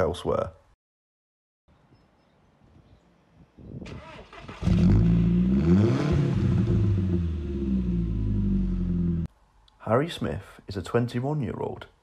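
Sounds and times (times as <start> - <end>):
car engine cranking: 3.9 - 9.0
car engine revving and idling: 4.6 - 9.3.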